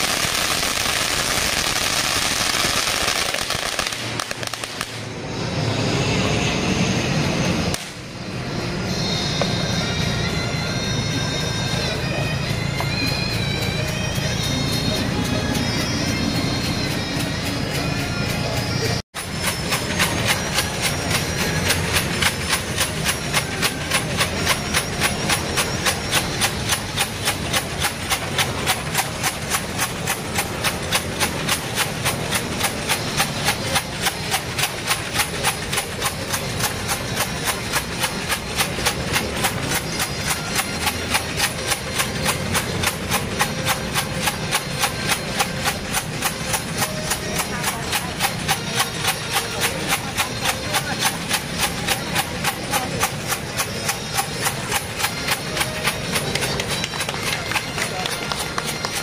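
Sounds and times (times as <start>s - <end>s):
steady percussion strikes: 0.0s - 5.3s, 7.0s - 59.0s.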